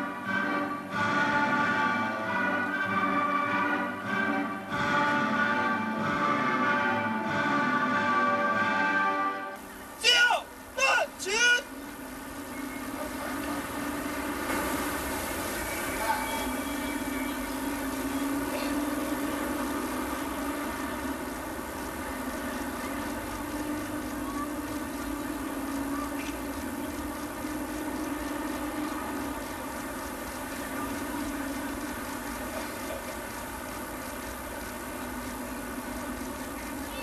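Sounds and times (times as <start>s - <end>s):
air-raid sirens: 0.0s - 33.2s.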